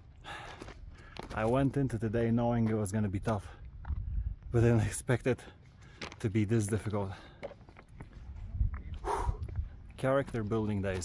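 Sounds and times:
heavy breathing: 0.2s - 1.3s, 8.9s - 9.9s.

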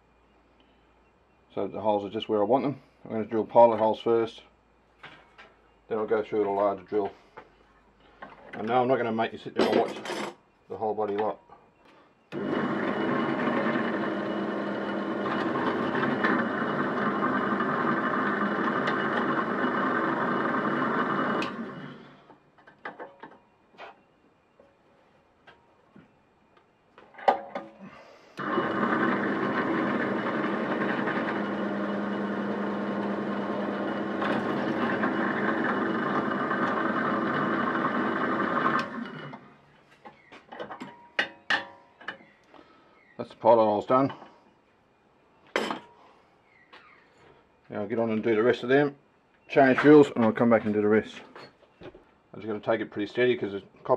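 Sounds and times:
drill press drilling metal: 12.3s - 22.1s, 28.4s - 39.4s.

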